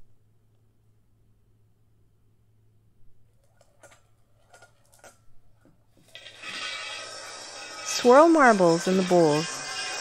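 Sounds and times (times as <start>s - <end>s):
marbles rolling in metal bowls: 6.0s - 10.0s.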